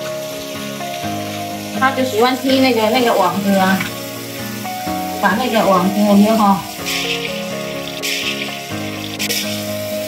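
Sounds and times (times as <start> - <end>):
soft background music: 0.0 - 10.0
water splashing onto tiled floor: 0.0 - 10.0.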